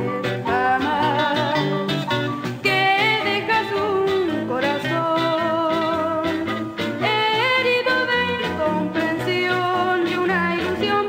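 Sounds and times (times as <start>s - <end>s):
pop song with band: 0.0s - 11.0s.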